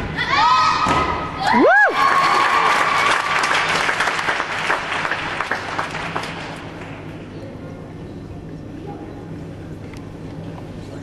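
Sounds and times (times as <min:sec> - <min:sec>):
person whooping: 0:01.4 - 0:02.4
crowd cheering and applauding: 0:01.5 - 0:07.0.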